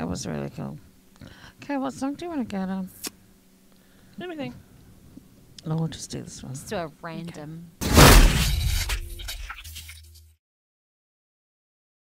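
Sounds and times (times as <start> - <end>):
loud burst with glitch crackle: 7.8 - 9.9
low hum: 7.8 - 10.2.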